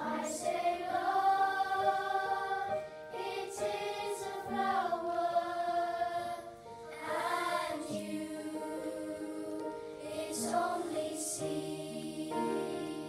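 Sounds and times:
children's choir singing: 0.0 - 13.0.

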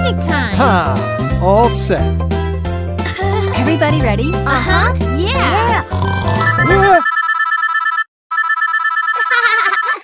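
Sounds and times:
phone trilling electronic ringtone: 6.2 - 10.0.

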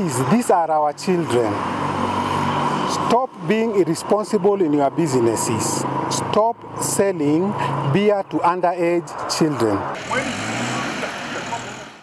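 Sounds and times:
street noise: 0.0 - 12.0
truck engine running: 10.0 - 12.0.

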